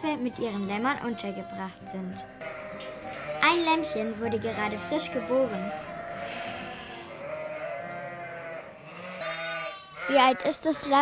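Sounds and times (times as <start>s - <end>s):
sheep bleating: 0.4s - 1.8s, 2.4s - 11.0s.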